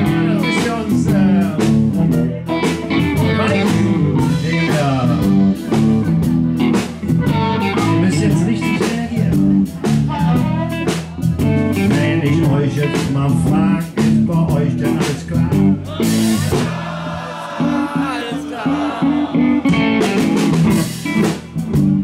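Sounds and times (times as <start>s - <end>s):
drum kit beat: 0.0s - 22.0s.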